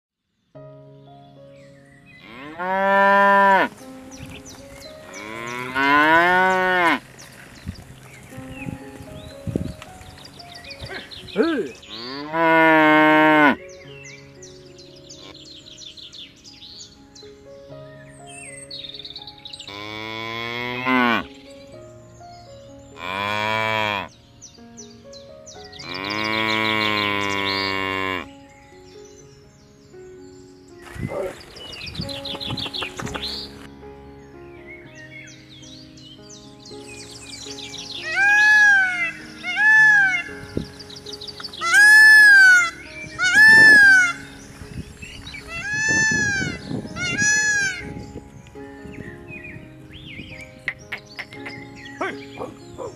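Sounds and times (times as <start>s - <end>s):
cattle mooing: 2.2s - 3.7s, 5.2s - 7.0s, 11.9s - 13.6s, 19.7s - 21.3s, 23.0s - 24.1s, 25.8s - 28.3s.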